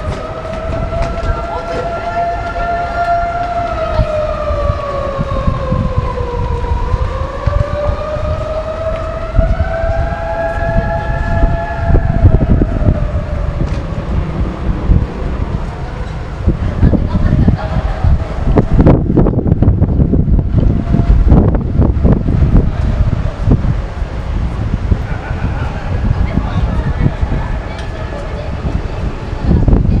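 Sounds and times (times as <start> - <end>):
low rumble of street traffic: 0.0 - 30.0
siren wailing: 0.0 - 30.0.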